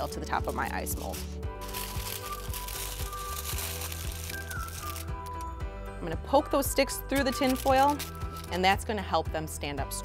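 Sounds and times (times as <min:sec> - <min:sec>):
aluminium foil crinkling: 0:00.0 - 0:05.6, 0:06.8 - 0:08.8
background music with steady beat: 0:00.0 - 0:10.0.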